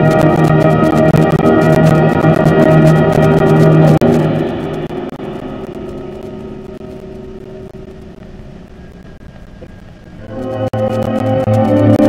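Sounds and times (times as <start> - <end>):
orchestral music: 0.0 - 7.8, 10.2 - 12.0.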